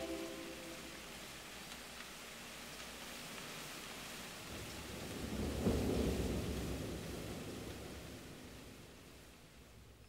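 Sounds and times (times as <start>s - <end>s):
rain falling: 0.0s - 10.0s
thunder rolling: 4.8s - 8.1s.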